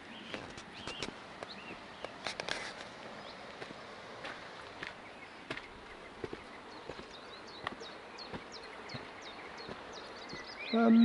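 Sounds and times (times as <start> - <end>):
small bird singing: 0.0 - 2.2, 4.9 - 11.0
footsteps on a hard path: 0.2 - 11.0.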